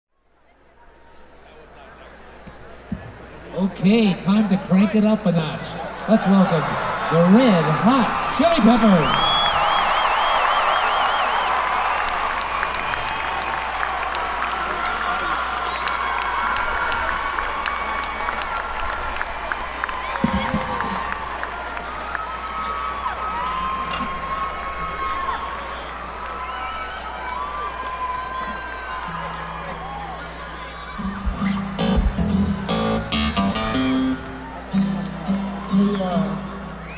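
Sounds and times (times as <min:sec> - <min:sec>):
crowd cheering and applauding: 0:05.7 - 0:36.9.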